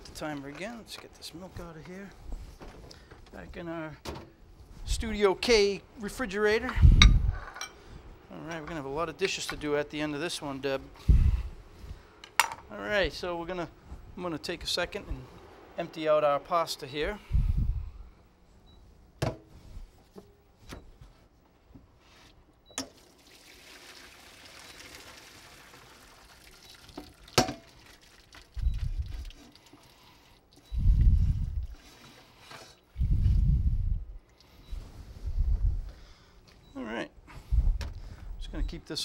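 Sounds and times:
dull low thumps: 0:06.7 - 0:07.4, 0:30.7 - 0:31.7, 0:33.0 - 0:34.2, 0:35.2 - 0:36.0, 0:37.4 - 0:38.8
water pouring: 0:22.9 - 0:30.6.

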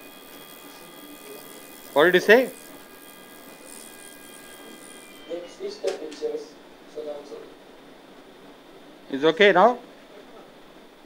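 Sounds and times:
steady electronic tone: 0:00.0 - 0:07.8.

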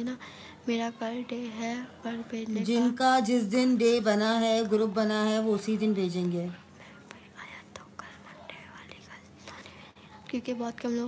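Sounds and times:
person whispering: 0:06.8 - 0:10.2.

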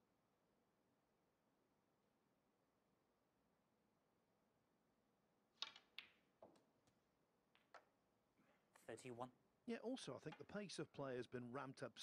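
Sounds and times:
snooker balls knocking together: 0:05.6 - 0:06.7, 0:07.5 - 0:08.0.

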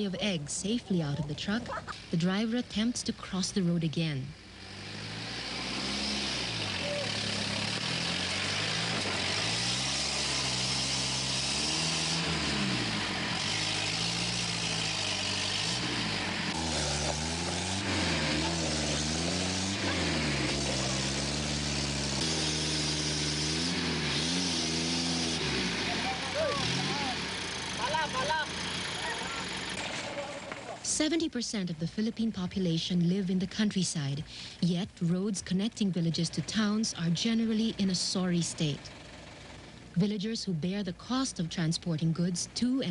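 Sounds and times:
truck engine revving: 0:00.0 - 0:42.9
short shouts: 0:25.9 - 0:27.2.

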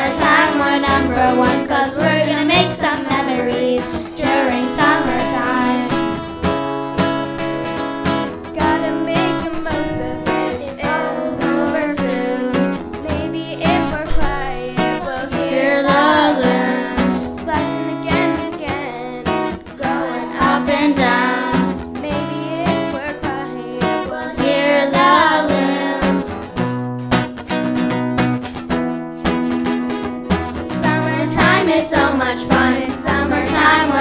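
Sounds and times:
person singing: 0:00.0 - 0:06.4, 0:08.2 - 0:26.6, 0:30.3 - 0:34.0
acoustic guitar strumming: 0:00.0 - 0:34.0.

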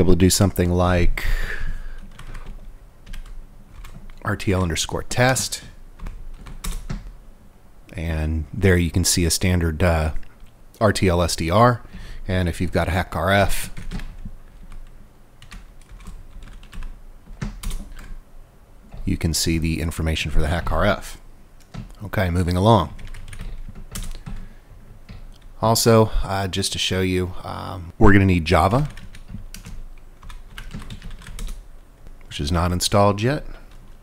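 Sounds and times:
keyboard key presses: 0:23.0 - 0:24.5.

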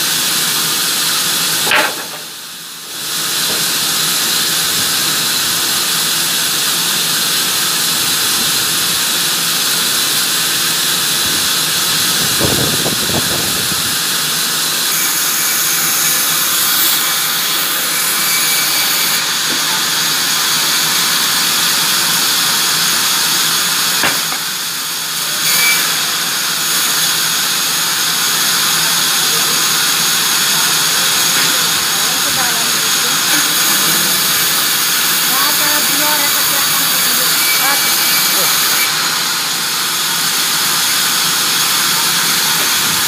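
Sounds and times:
band saw cutting timber: 0:00.0 - 0:43.0.

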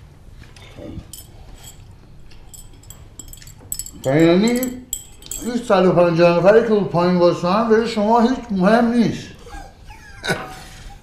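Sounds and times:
teaspoon clinking in tea glass: 0:01.0 - 0:05.8.

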